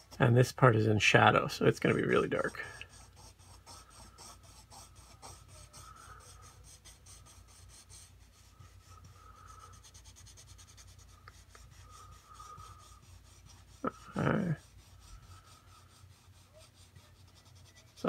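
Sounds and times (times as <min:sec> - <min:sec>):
pencil scratching on paper: 0:01.7 - 0:18.0.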